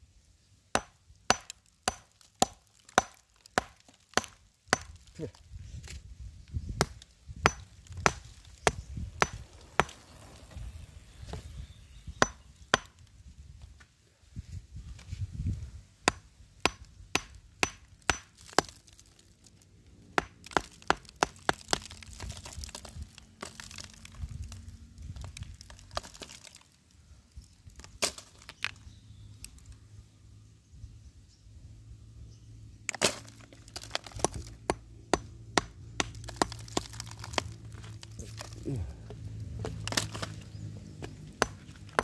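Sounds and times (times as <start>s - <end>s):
hammer striking rock: 0.8s - 5.0s, 6.8s - 10.0s, 12.2s - 13.0s, 16.0s - 18.7s, 20.2s - 21.9s, 34.1s - 37.0s, 41.4s - 42.0s.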